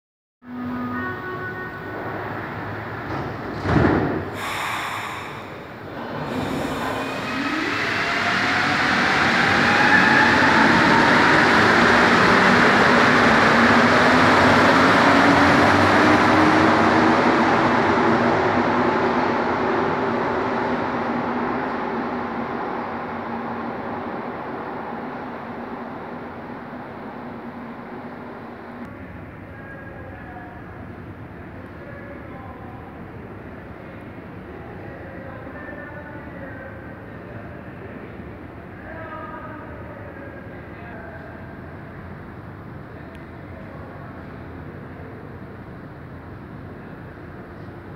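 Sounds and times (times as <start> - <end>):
train doors closing thud: 3.0 - 4.4.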